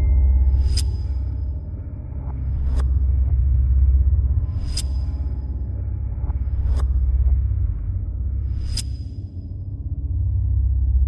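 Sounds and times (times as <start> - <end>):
deep rumbling drone: 0.0 - 11.0.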